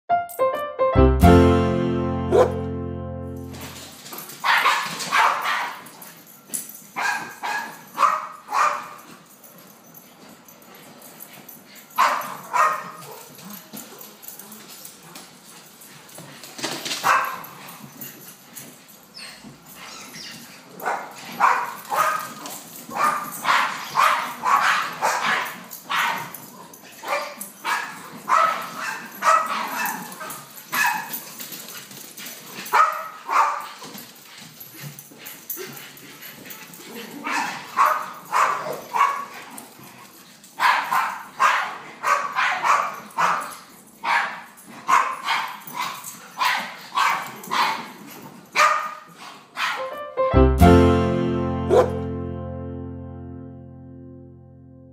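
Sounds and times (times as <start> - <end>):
small dogs barking and yipping: 4.4 - 5.9, 7.0 - 9.1, 12.0 - 13.4, 17.0 - 17.7, 19.1 - 31.4, 32.5 - 34.0, 36.8 - 39.6, 40.6 - 50.0.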